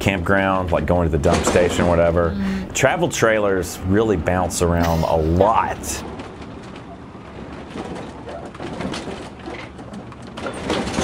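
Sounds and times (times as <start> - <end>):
trailer knocks and rattles: 0.0 - 4.7, 5.4 - 11.0.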